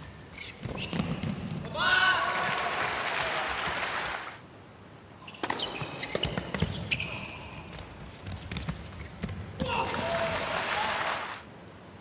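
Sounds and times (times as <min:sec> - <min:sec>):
shoe squeaks: 0:00.0 - 0:01.3, 0:05.2 - 0:09.3
crowd applause: 0:02.2 - 0:04.4, 0:10.2 - 0:11.4.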